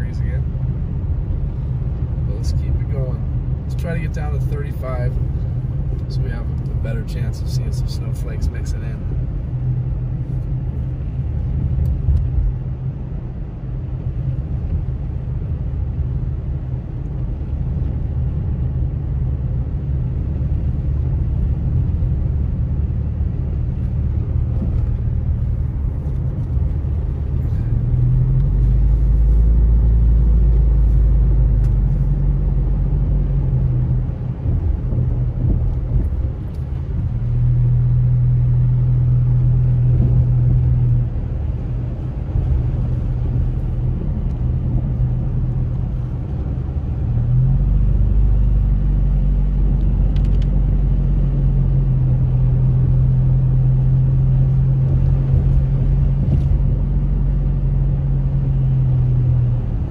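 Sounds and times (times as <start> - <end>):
car engine and tyres rumbling: 0.0 - 59.9.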